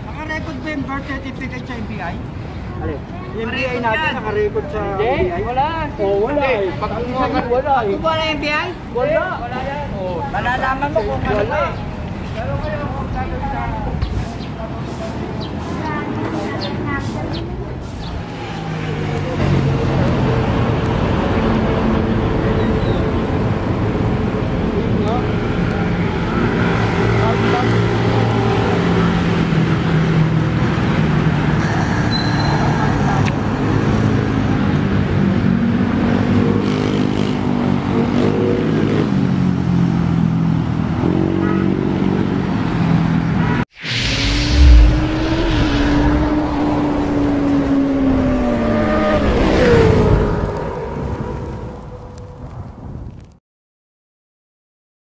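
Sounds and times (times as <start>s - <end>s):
passing traffic: 0.0s - 53.2s
vehicle engine passing: 43.7s - 51.7s.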